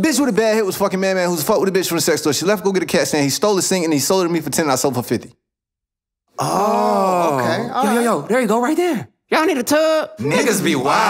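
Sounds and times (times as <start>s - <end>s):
man calling out: 6.4s - 11.0s.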